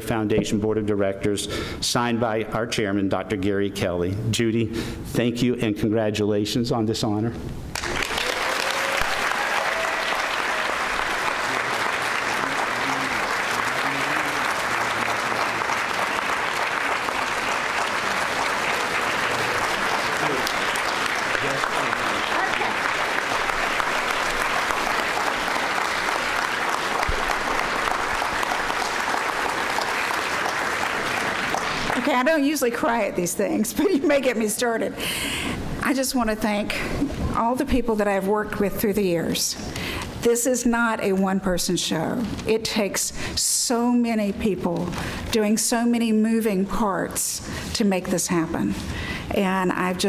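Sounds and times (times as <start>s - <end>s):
large audience applauding: 7.7s - 32.8s
faint voices: 11.5s - 15.7s.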